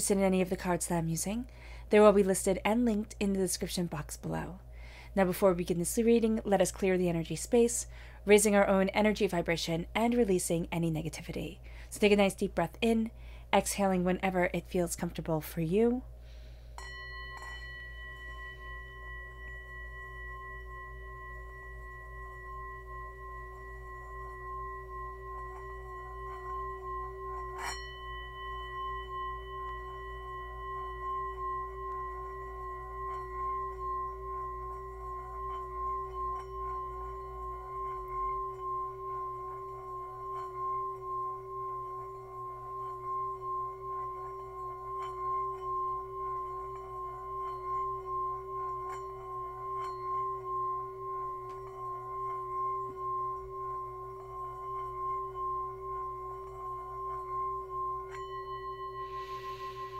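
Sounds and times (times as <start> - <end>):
singing bowl ringing hum: 0.0 - 59.9.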